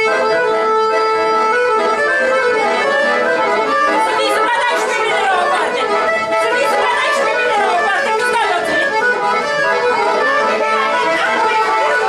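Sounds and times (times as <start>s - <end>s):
accordion dance music: 0.0s - 12.0s
people chattering: 0.0s - 12.0s.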